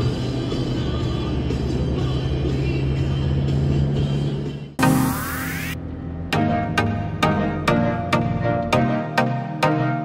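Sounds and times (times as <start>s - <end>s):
road and engine rumble: 0.0s - 5.1s
rock music on car stereo: 0.0s - 10.0s.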